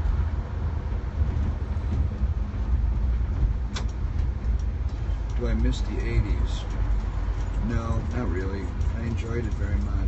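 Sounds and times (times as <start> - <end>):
engine and road noise in vehicle cabin: 0.0 - 10.0.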